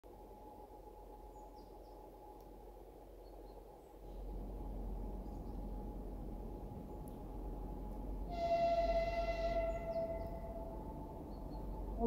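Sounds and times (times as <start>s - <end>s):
low rumble: 0.1s - 12.0s
bird chirps: 9.4s - 12.0s.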